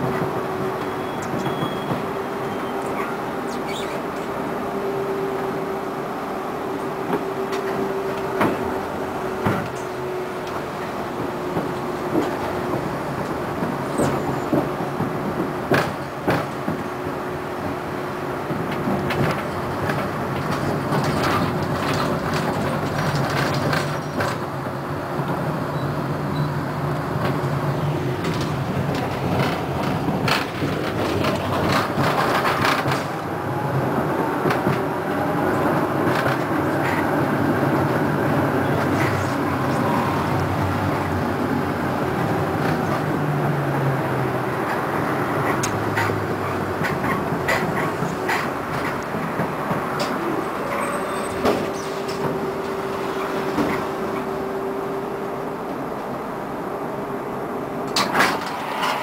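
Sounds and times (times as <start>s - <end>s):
rail joint clicks: 0.0s - 4.6s, 5.5s - 43.2s, 44.2s - 56.2s, 57.8s - 59.0s
wheels clattering on rails: 0.0s - 4.8s, 5.4s - 56.3s, 57.8s - 59.0s
tram drive hum: 0.0s - 59.0s.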